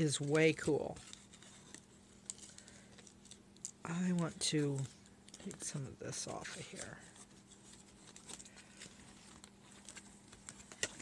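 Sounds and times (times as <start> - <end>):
faint steady hum: 0.0 - 11.0
paper and cardstock rustling: 0.0 - 11.0.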